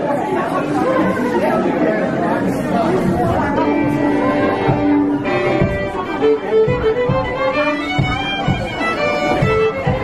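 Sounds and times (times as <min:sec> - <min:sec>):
audience chatter: 0:00.0 - 0:10.0
fiddles playing: 0:03.4 - 0:10.0.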